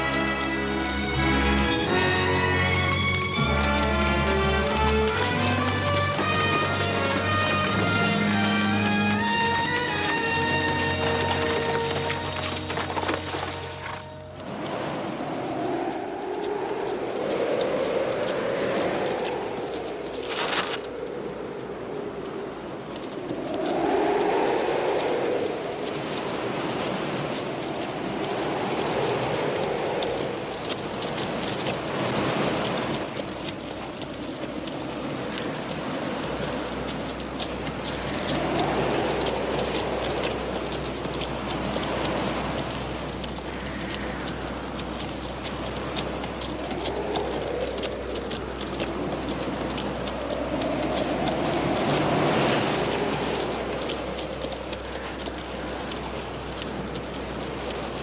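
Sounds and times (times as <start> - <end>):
wind blowing in gusts: 0.0 - 58.0.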